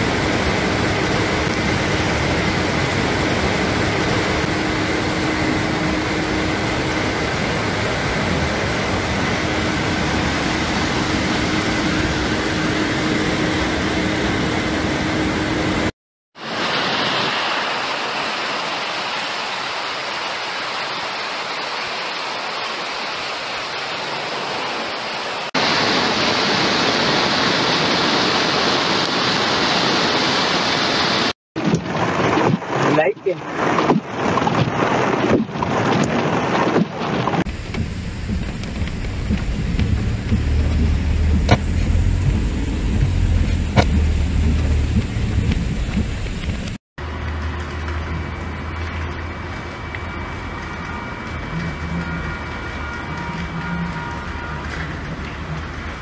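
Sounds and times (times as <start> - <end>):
floodwater rushing: 0.0 - 56.0.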